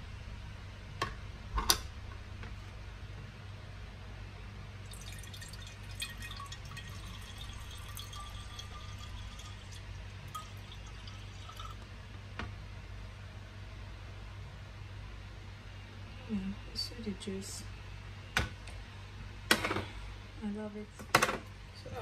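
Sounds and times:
juice pouring into glass bottle: 0:04.8 - 0:11.8.

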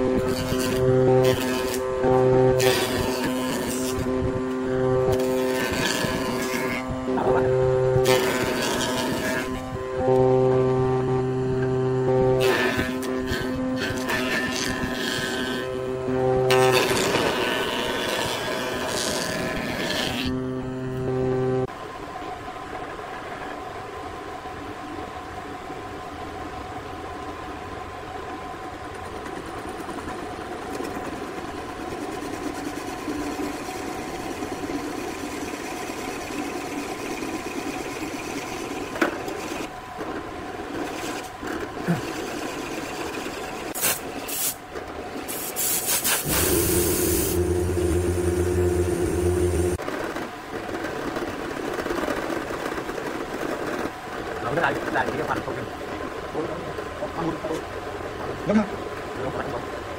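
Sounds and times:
drill bit boring into wood: 0:46.2 - 0:49.8
drill press motor humming: 0:46.2 - 0:49.8.

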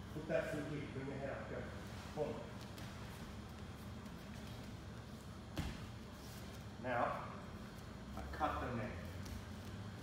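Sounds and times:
people grappling on a mat: 0:01.8 - 0:06.8
thump on padded mat: 0:05.5 - 0:06.0.

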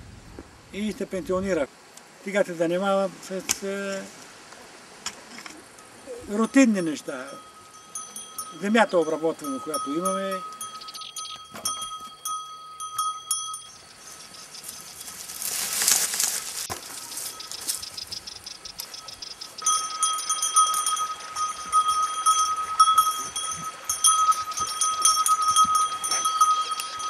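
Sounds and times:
rustling hiss: 0:00.0 - 0:27.0
cow bell clanking: 0:06.1 - 0:15.5, 0:16.8 - 0:27.0.

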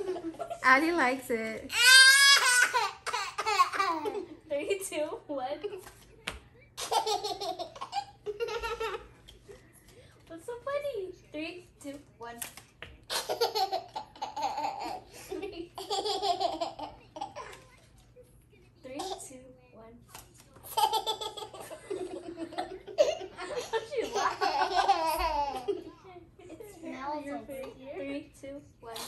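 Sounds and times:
young children laughing: 0:00.0 - 0:00.7, 0:01.8 - 0:04.5, 0:20.7 - 0:26.9.

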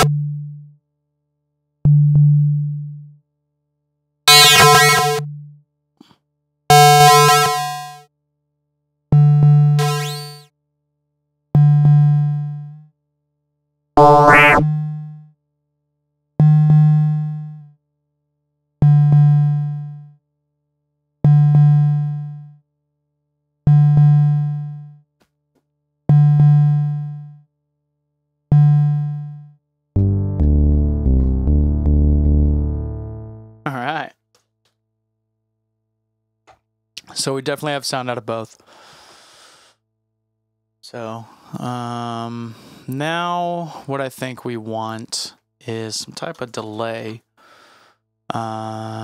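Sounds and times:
low synth notes: 0:14.0 - 0:14.7, 0:30.0 - 0:33.6.

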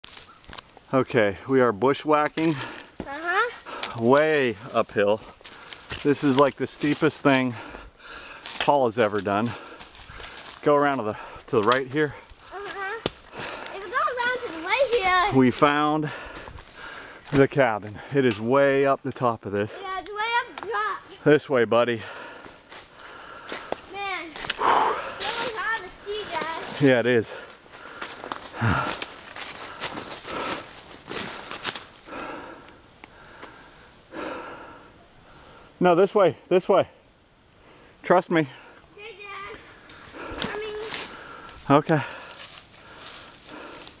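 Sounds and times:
footsteps through dry leaves: 0:00.0 - 0:00.6, 0:25.1 - 0:32.1, 0:40.0 - 0:41.3, 0:42.1 - 0:44.0
footsteps crunching dry leaves: 0:00.0 - 0:00.8, 0:05.2 - 0:10.7, 0:12.1 - 0:17.4, 0:22.2 - 0:32.2, 0:40.0 - 0:41.4, 0:42.0 - 0:44.0
twigs clicking: 0:27.5 - 0:33.6.

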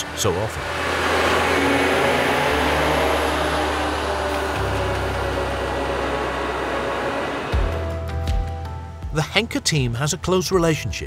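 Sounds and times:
harvester engine and tyre noise: 0:00.0 - 0:10.6
background music with bass: 0:00.0 - 0:11.0.

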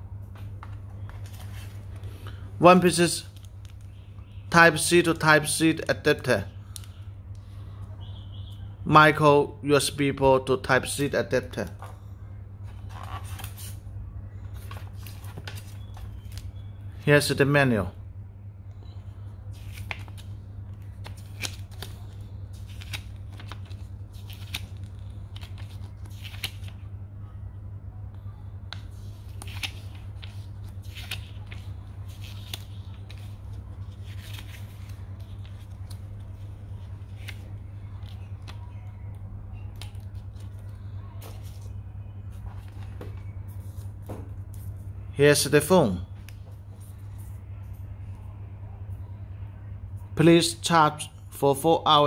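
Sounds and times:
steady low hum: 0:00.0 - 0:52.0
pages flipping: 0:00.4 - 0:02.2, 0:03.3 - 0:04.0, 0:12.7 - 0:13.8, 0:14.4 - 0:16.6, 0:19.5 - 0:26.8, 0:28.7 - 0:38.8, 0:39.6 - 0:44.8
paper rustling and crinkling: 0:00.5 - 0:02.2, 0:12.7 - 0:13.8, 0:14.4 - 0:16.5, 0:19.5 - 0:26.8, 0:28.7 - 0:38.9, 0:39.8 - 0:44.7.

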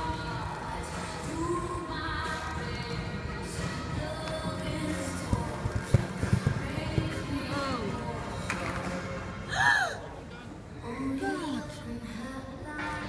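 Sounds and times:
background music over loudspeakers: 0:00.0 - 0:13.0
horse hooves thudding on soft ground: 0:02.6 - 0:08.0.

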